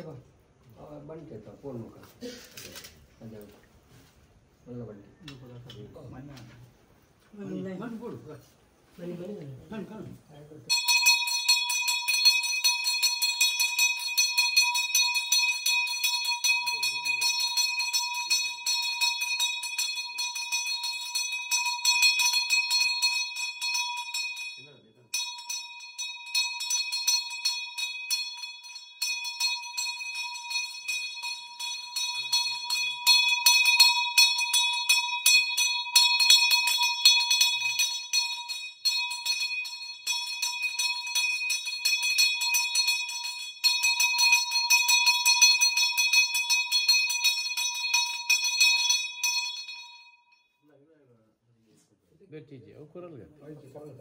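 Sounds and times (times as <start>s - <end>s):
brass hand bell ringing: 10.7s - 50.6s.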